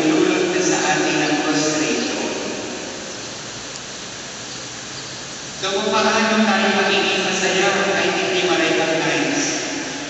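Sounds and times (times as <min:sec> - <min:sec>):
electric fans hissing: 0:00.0 - 0:10.0.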